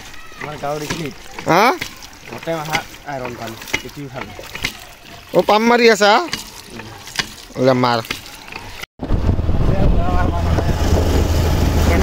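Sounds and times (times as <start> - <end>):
road and air noise: 9.0 - 12.0.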